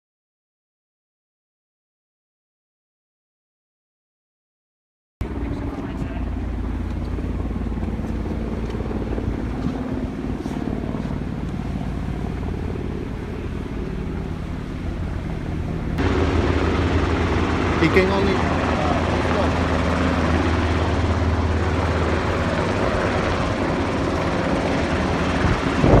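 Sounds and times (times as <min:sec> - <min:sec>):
distant helicopter drone: 0:05.2 - 0:26.0.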